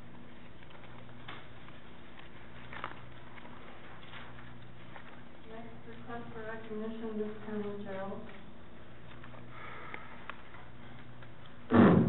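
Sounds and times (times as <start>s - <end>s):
low room hum: 0.0s - 12.0s
loud burst of noise: 11.7s - 12.0s.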